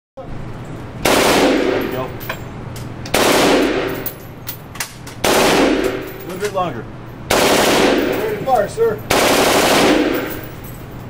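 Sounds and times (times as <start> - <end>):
automatic rifle fire indoors: 1.0 - 2.0, 3.1 - 4.1, 5.2 - 6.1, 7.3 - 8.3, 9.1 - 10.5.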